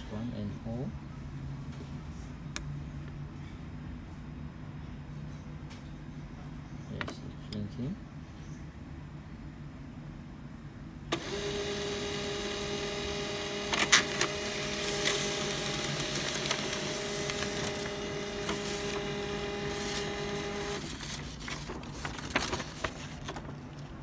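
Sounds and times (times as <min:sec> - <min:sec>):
printer motor whining: 0:11.1 - 0:21.3
printer clicks: 0:13.6 - 0:20.8.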